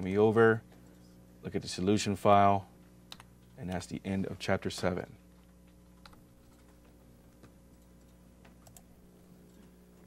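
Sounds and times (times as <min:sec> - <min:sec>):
low electrical hum: 0:00.0 - 0:10.0
computer keyboard clicks: 0:05.7 - 0:08.9.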